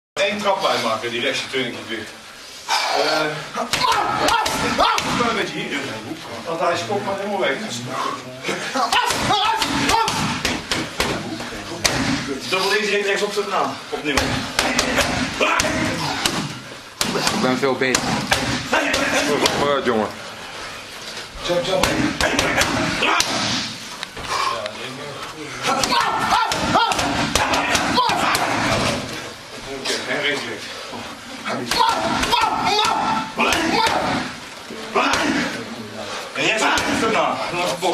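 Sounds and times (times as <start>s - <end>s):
strikes smacking against pads: 3.7s - 5.3s, 8.9s - 12.3s, 14.1s - 19.8s, 21.7s - 23.7s, 25.7s - 28.8s, 31.7s - 34.2s
short sharp shouts: 25.7s - 28.7s, 31.7s - 34.3s.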